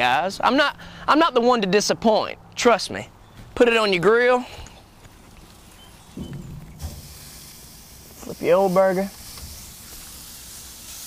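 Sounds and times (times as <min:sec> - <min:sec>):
meat sizzling on a grill: 0:06.8 - 0:11.0.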